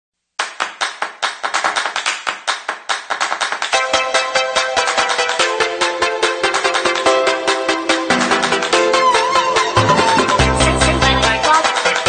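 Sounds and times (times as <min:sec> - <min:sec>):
fast hand claps: 0:00.4 - 0:03.8.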